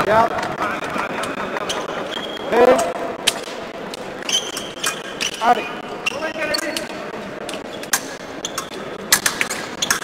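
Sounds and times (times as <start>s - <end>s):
shoe squeaks: 1.6s - 2.6s, 4.2s - 7.0s, 7.6s - 8.9s.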